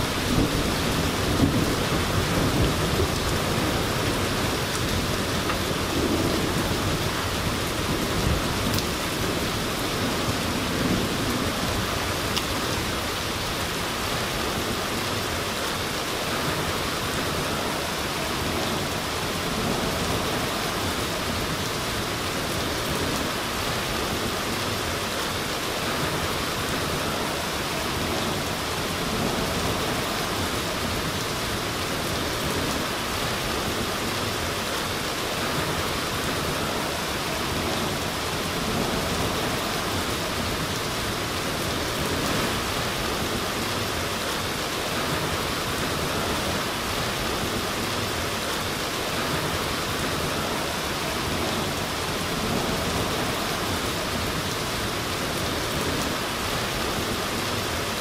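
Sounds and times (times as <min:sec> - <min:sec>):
rain falling steadily: 0:00.0 - 0:58.0.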